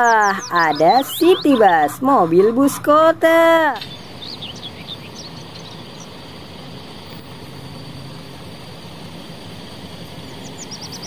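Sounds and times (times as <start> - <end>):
bus diesel engine idling: 0.0 - 11.0
street noise: 0.0 - 11.0.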